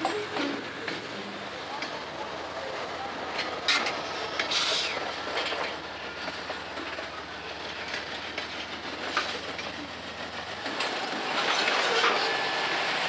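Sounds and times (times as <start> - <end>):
diesel locomotive passing: 0.0 - 13.0
freight train cars rolling: 0.0 - 13.0
wheels clicking over rail joints: 0.0 - 13.0.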